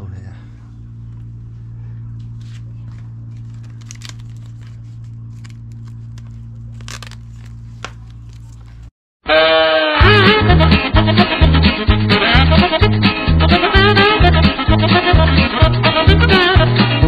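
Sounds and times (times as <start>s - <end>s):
steady low hum: 0.0s - 8.9s
plastic film rustling and crackling: 3.3s - 8.9s
music: 9.2s - 17.0s.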